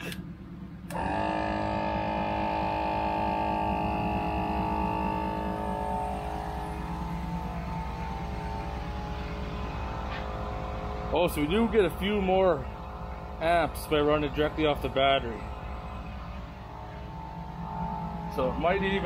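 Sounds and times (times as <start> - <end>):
air compressor whining hum: 0.0 - 19.0.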